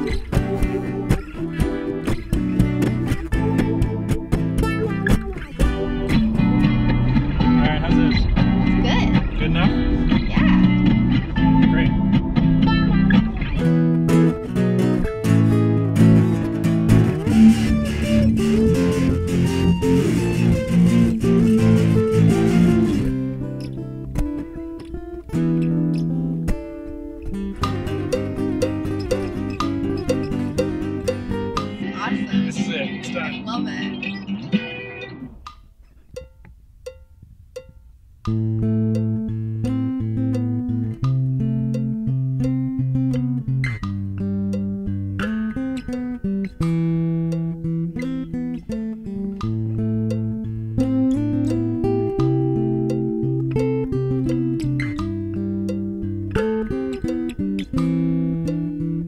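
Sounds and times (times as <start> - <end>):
looped plucked guitar riffs: 0.0 - 59.0.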